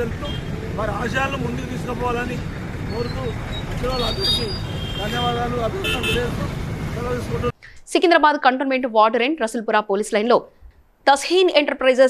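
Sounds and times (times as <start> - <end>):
man speaking: 0.0 - 7.6
road traffic noise: 0.0 - 7.8.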